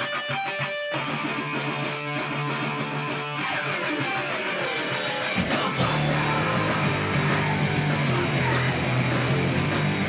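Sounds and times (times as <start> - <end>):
electric guitar riff: 0.0 - 10.0
sustained low notes: 5.8 - 10.0.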